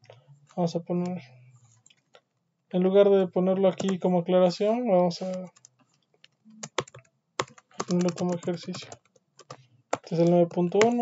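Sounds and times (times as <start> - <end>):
computer keyboard clicks: 3.8 - 4.0, 6.6 - 11.0.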